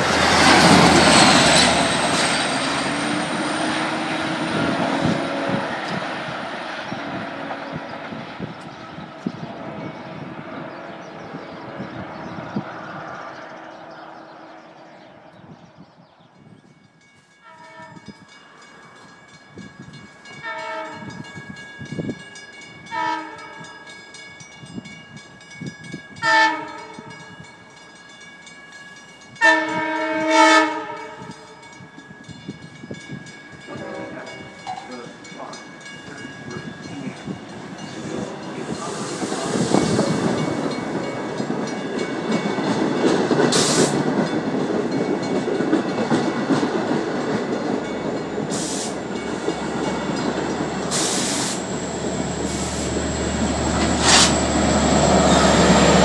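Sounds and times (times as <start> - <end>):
train rumbling past: 0.0 - 56.0
train horn blasts: 3.3 - 6.1, 6.9 - 7.9, 17.4 - 18.2, 20.4 - 21.2, 22.8 - 23.7, 26.2 - 27.1, 29.4 - 31.6
short hiss: 48.6 - 49.0, 50.9 - 51.6.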